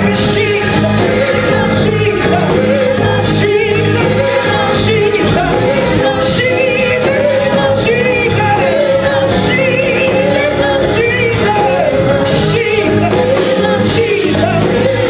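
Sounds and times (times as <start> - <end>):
church instrumental accompaniment: 0.0 - 15.0.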